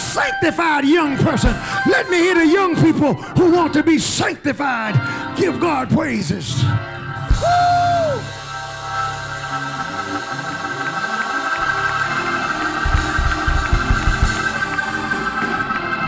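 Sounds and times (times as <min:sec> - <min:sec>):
organ sustained chords: 0:00.0 - 0:16.0
drums: 0:01.1 - 0:03.1, 0:07.1 - 0:08.4, 0:11.6 - 0:16.0
congregation clapping: 0:10.6 - 0:15.9.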